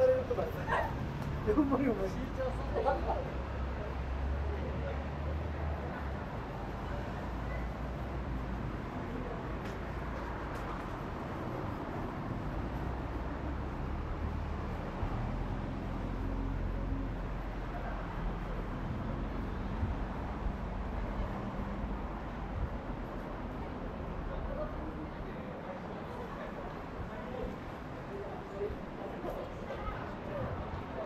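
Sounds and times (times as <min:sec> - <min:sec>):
road traffic rumble: 0:00.0 - 0:31.0.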